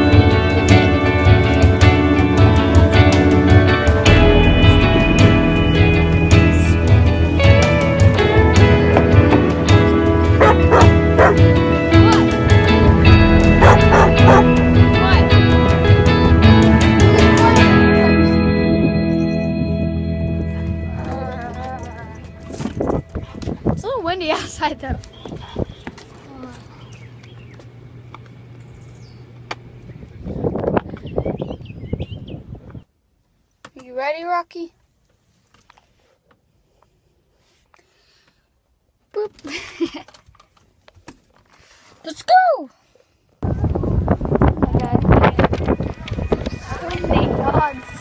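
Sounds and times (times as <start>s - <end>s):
background music with beat: 0.0s - 22.5s
steady low hum: 2.5s - 8.9s
dog barking: 10.4s - 11.4s, 13.6s - 14.5s.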